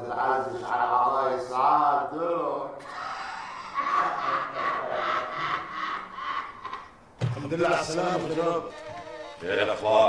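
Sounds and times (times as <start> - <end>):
man laughing wheezily: 2.8 - 6.8.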